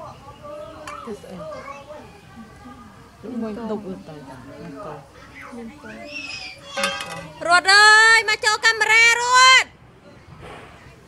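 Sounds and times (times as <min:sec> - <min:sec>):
children talking: 0:00.0 - 0:11.0.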